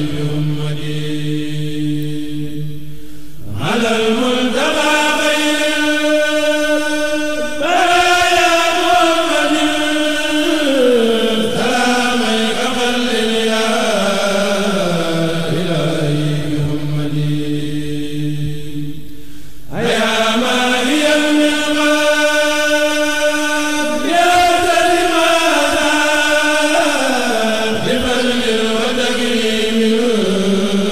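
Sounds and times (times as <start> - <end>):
person chanting religious verses: 0.0 - 19.1, 19.7 - 30.9.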